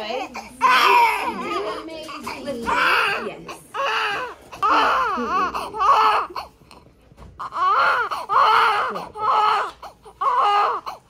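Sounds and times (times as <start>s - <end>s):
newborn baby crying: 0.1s - 11.0s.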